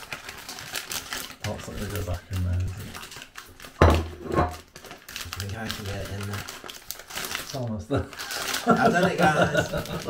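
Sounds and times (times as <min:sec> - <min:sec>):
thump and packaging handling: 0:03.8 - 0:04.6.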